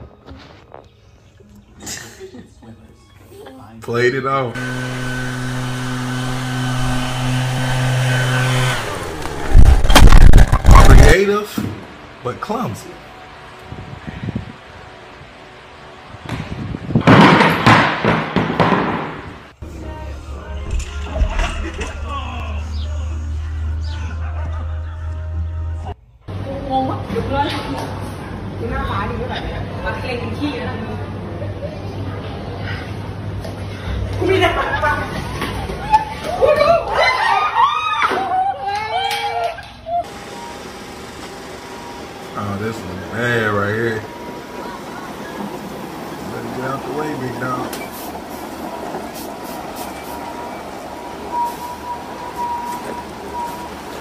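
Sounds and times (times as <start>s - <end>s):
steady even noise: 4.6s - 11.2s
gym equipment crashing to floor: 17.0s - 19.2s.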